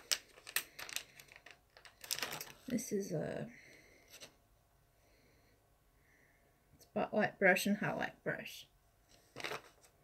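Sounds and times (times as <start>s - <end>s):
plastic packaging crinkling: 0.0s - 2.9s, 9.3s - 9.9s.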